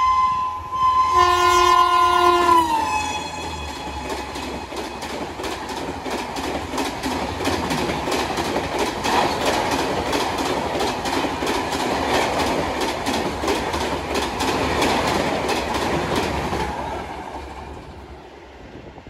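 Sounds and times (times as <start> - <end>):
train rushing past: 0.0 - 19.0.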